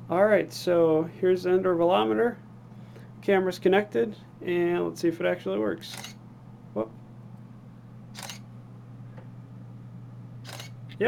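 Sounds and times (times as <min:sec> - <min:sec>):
camera shutter firing: 0:05.9 - 0:06.2, 0:08.1 - 0:08.5, 0:10.4 - 0:10.8.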